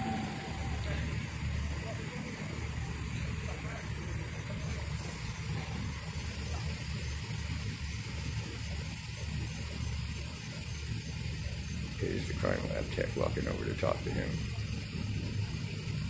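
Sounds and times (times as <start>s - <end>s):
vehicle engine idling: 0.0s - 16.0s.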